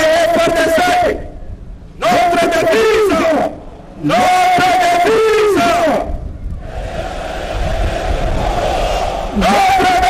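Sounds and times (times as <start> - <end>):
crowd noise: 6.6 - 10.0.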